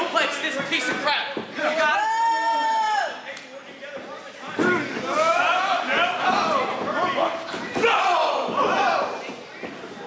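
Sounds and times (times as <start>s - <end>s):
wrestlers thudding on ring: 3.9s - 10.0s
people shouting: 4.6s - 9.3s.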